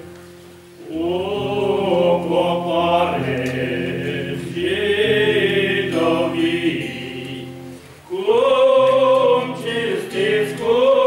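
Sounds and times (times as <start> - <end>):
men singing a hymn in harmony: 0.8 - 11.0.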